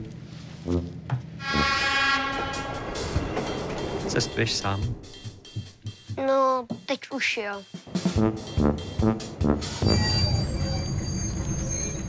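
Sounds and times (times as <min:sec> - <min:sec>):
diesel railcar horn blast: 0:00.7 - 0:04.9.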